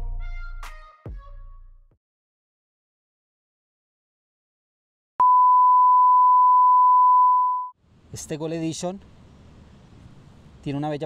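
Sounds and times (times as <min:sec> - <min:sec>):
steady pure test tone beep: 0:05.2 - 0:07.8.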